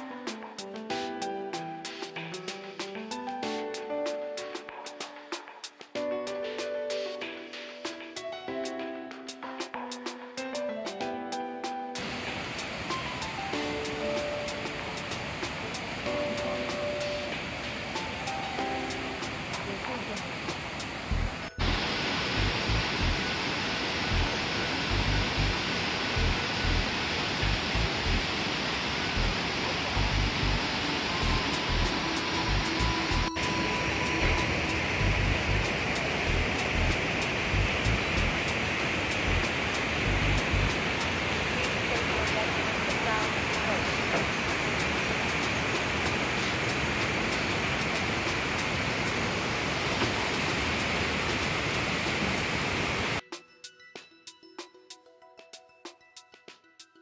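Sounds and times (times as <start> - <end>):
waterfall rushing: 12.0 - 53.2.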